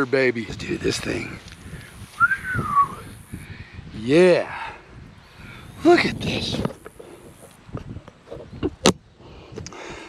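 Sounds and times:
whistled note gliding in pitch: 2.2 - 3.1.

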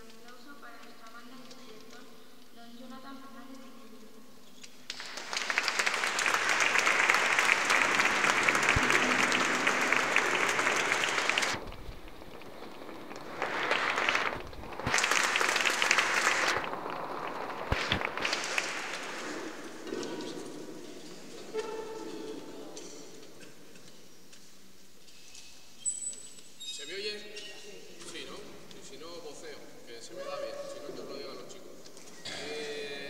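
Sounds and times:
audience applauding: 4.9 - 22.1.

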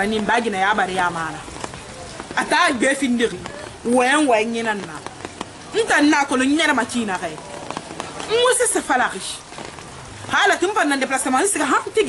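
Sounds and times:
woman talking: 0.0 - 1.4, 2.4 - 5.0, 5.7 - 7.4, 8.3 - 9.4, 10.3 - 12.0.

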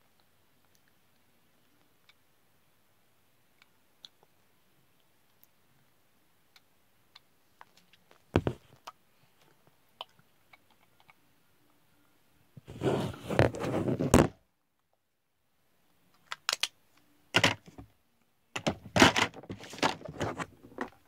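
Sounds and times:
phone rubbing against microphone: 12.6 - 14.3
knocks and scrapes: 12.6 - 14.4, 18.6 - 21.0.

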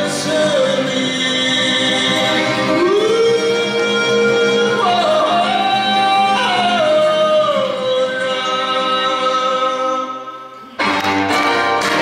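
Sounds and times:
man singing yodel-like: 0.0 - 10.6
acoustic guitar strummed: 0.0 - 12.0.

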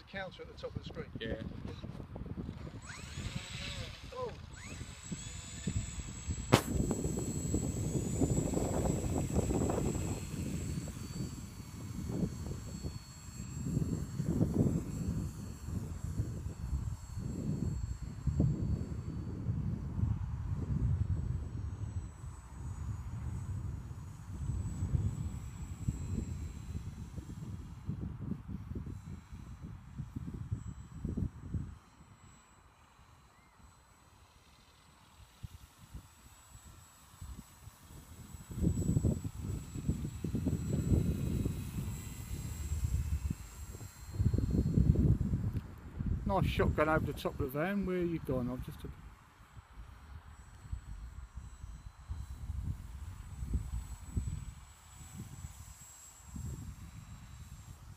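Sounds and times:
electric motor whine: 0.0 - 57.9.

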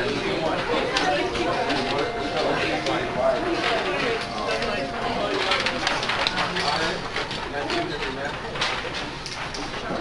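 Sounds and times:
babble of students talking: 0.0 - 10.0.

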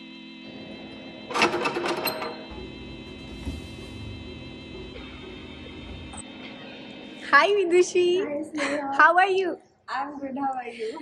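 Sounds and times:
metal door bolt sliding: 1.3 - 4.1.

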